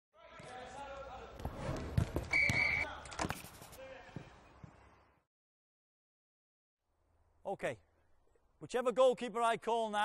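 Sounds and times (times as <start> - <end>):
football kicked and bouncing: 1.4 - 2.7
whistle blast: 2.3 - 2.9.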